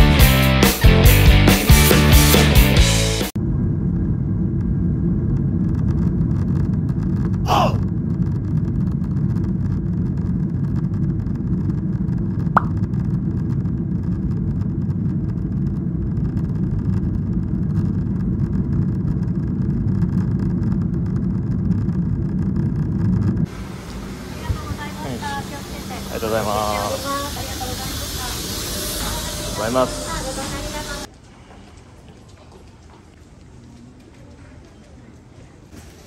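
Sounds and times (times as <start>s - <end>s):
jet engine rumble: 3.3s - 31.2s.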